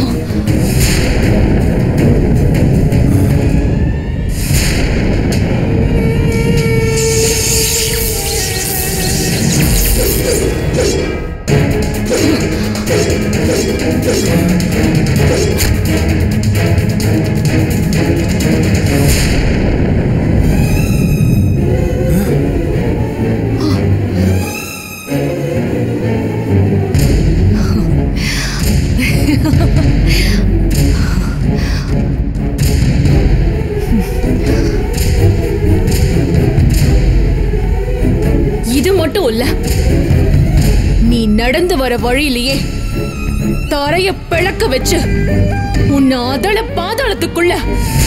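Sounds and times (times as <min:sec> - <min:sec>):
deep rumbling low end: 0:00.0 - 0:08.3, 0:11.4 - 0:24.4, 0:26.8 - 0:48.0
suspenseful background score: 0:00.0 - 0:48.0
booming hit: 0:00.2 - 0:07.8, 0:18.9 - 0:22.9, 0:27.0 - 0:37.6.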